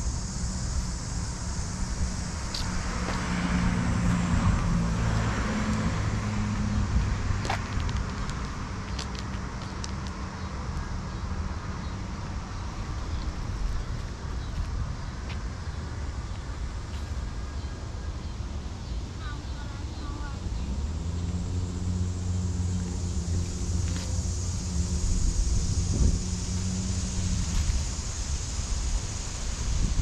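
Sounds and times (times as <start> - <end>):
vehicle passing: 0.0 - 9.6, 18.6 - 30.0
steady road noise: 0.0 - 30.0.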